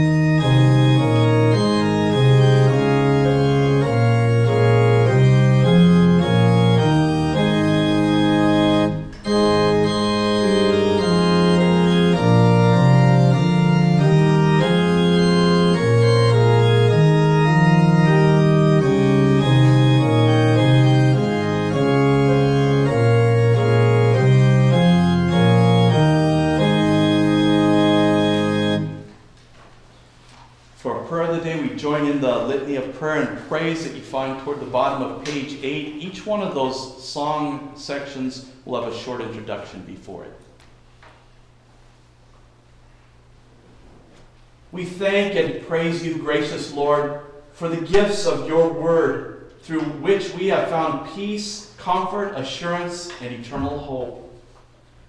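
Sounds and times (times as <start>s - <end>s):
organ playing sustained chords: 0.0s - 29.3s, 30.8s - 40.5s, 41.4s - 55.0s.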